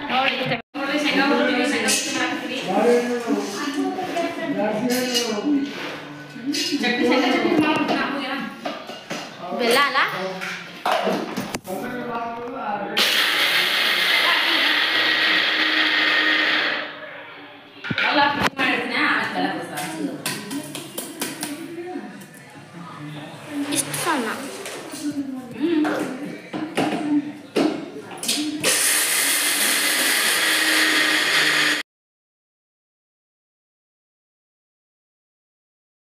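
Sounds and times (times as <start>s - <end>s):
mixer grinder whirring: 13.0s - 17.1s, 28.6s - 31.8s.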